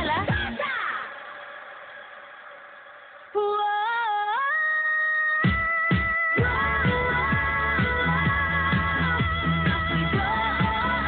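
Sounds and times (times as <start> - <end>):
pop song: 0.0 - 11.0.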